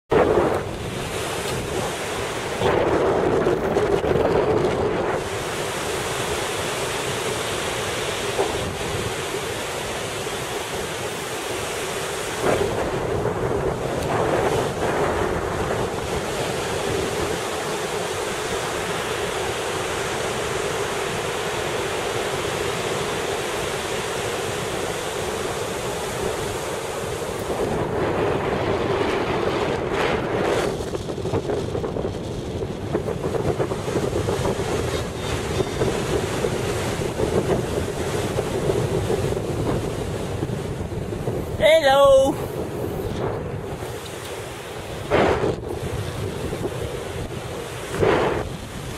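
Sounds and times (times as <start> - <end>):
wind rushing over microphone: 0.1 - 48.9.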